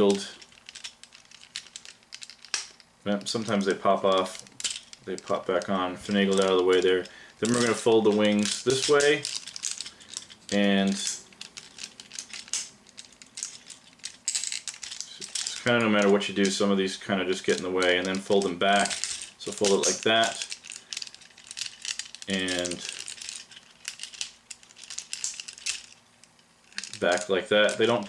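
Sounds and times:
plastic toy parts clicking: 0:00.0 - 0:16.6, 0:17.4 - 0:28.0.

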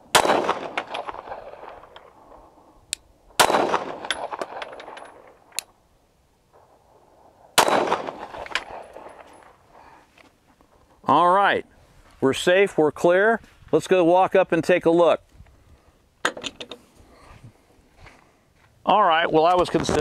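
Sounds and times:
pistol shots echoing: 0:00.0 - 0:02.3, 0:03.4 - 0:05.4, 0:07.5 - 0:09.6.

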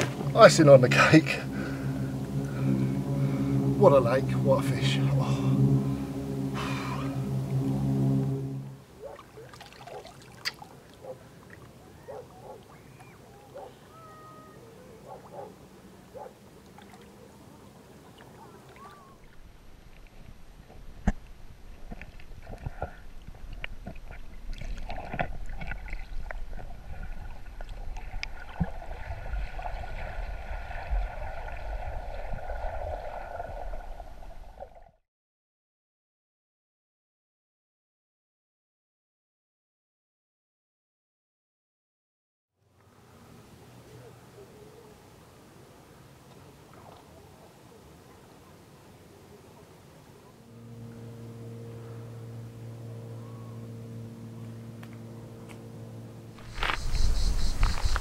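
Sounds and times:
steady low hum: 0:00.0 - 0:09.2, 0:50.2 - 0:58.0
underwater rumble of water: 0:00.0 - 0:13.7, 0:15.0 - 0:35.0.

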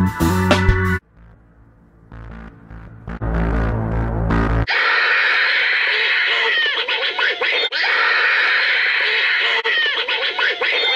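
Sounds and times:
deep synth drone: 0:00.9 - 0:04.7
shrill wavering squeals and chattering: 0:04.7 - 0:10.9.

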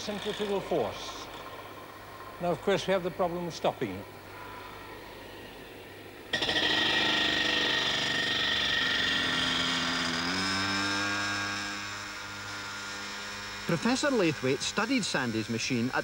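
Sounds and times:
spinning wheel grinding screech: 0:00.0 - 0:01.7, 0:06.4 - 0:16.0.

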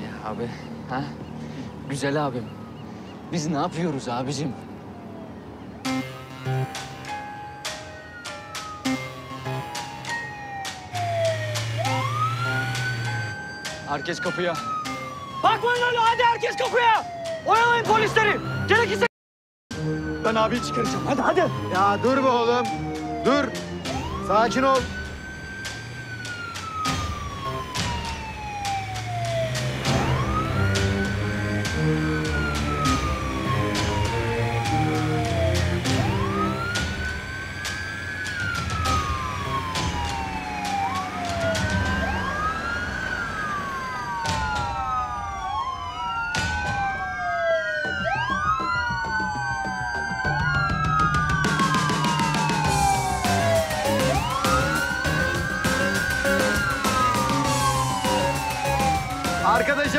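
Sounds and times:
sirens wailing: 0:00.0 - 0:19.1, 0:19.7 - 0:59.9
background music: 0:05.7 - 0:19.1, 0:19.7 - 0:59.9.

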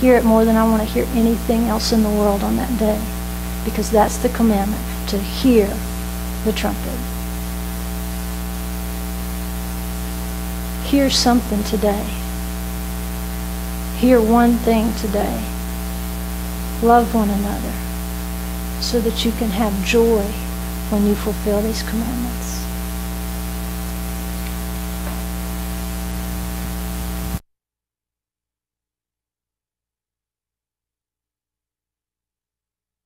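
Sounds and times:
electrical mains hum: 0:00.0 - 0:27.4.

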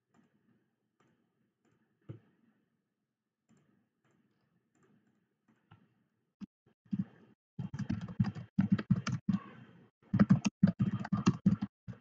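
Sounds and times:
typing on computer keyboard: 0:07.6 - 0:09.4, 0:10.2 - 0:12.0.

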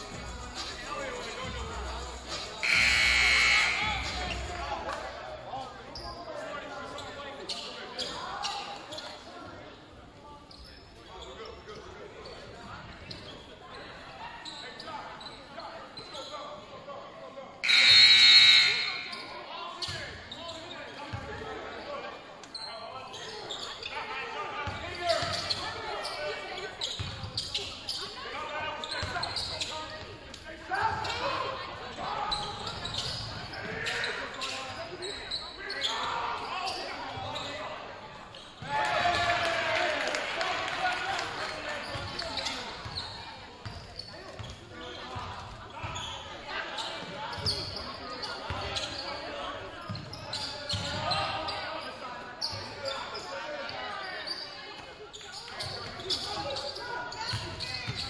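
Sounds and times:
people shouting and talking: 0:00.0 - 0:58.0.

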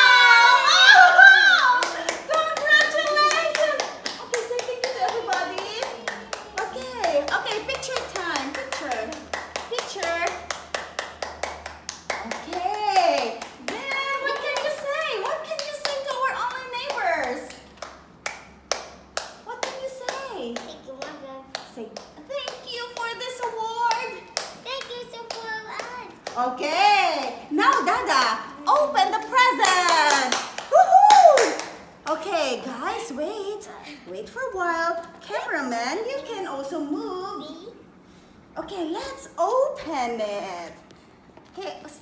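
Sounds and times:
voices: 0:00.0 - 0:10.6, 0:12.1 - 0:17.7
hands clapping steadily: 0:01.6 - 0:28.0, 0:28.6 - 0:32.2.

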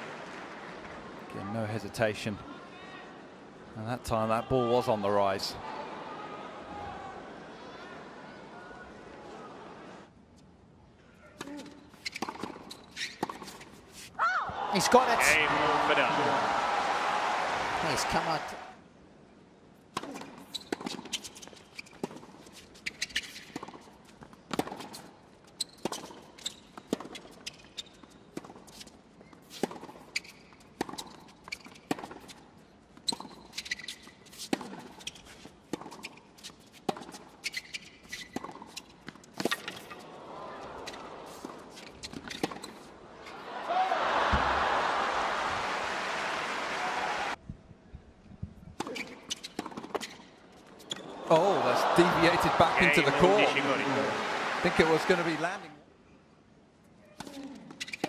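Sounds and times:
shoe squeaks: 0:11.5 - 0:14.2, 0:20.2 - 0:23.6, 0:24.8 - 0:32.4, 0:33.0 - 0:40.0, 0:48.8 - 0:51.1, 0:57.1 - 0:58.0
crowd applauding: 0:14.6 - 0:18.7, 0:43.5 - 0:47.4, 0:51.3 - 0:55.6.

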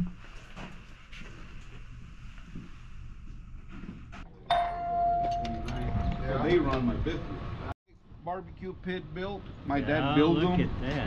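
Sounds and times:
door entry chime tone: 0:04.5 - 0:06.4.

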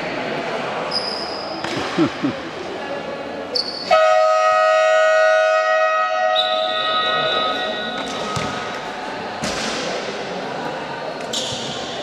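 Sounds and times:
scoreboard buzzer horn: 0:03.9 - 0:08.0.

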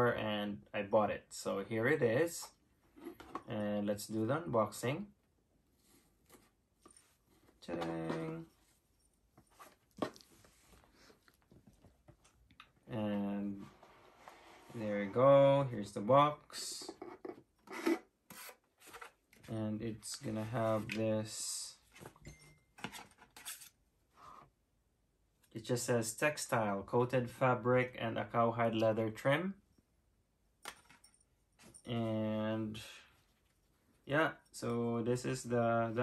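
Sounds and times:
paper and card rustling: 0:17.8 - 0:21.0.

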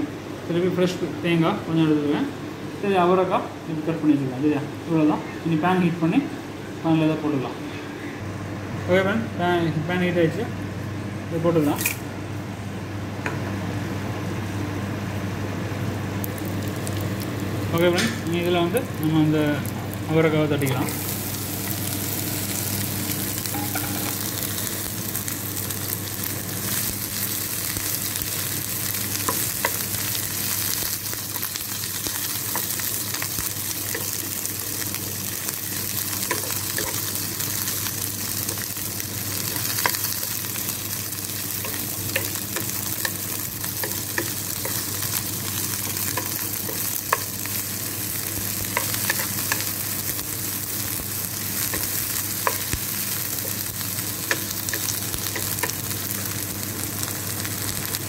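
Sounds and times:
beans sizzling in oil: 0:16.2 - 0:58.0.

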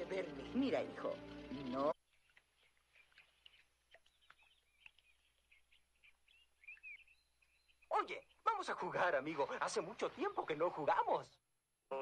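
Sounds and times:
birds chirping and whistling: 0:00.0 - 0:08.5.

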